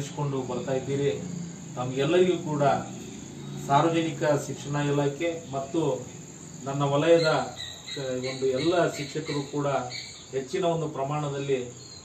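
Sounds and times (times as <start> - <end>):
man speaking: 0.0 - 3.0, 3.6 - 11.8
crickets trilling: 0.0 - 12.0.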